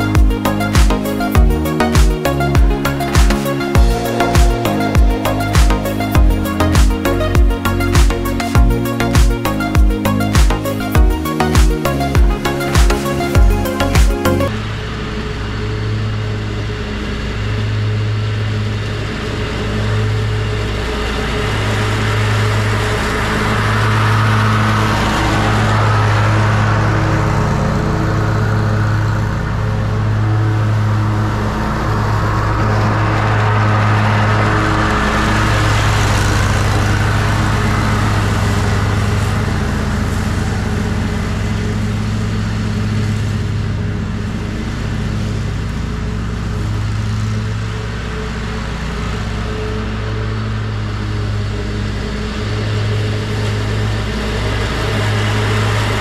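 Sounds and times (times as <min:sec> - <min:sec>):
mower engine droning: 0:00.0 - 0:56.0
mower blades mulching leaves: 0:17.3 - 0:56.0.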